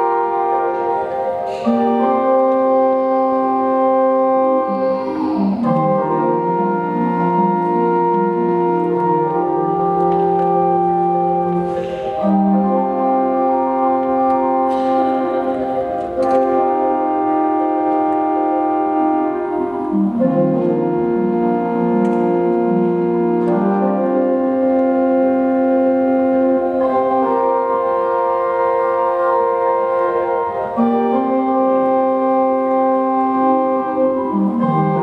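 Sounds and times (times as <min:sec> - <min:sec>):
church pipe organ chords: 0:00.0 - 0:35.0.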